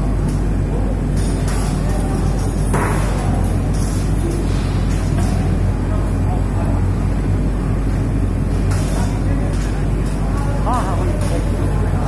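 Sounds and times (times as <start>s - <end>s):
fans and motors droning: 0.0s - 12.0s.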